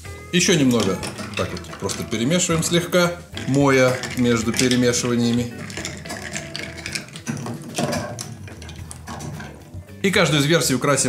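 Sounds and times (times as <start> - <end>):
ice clinking against glass: 0.6 - 9.7.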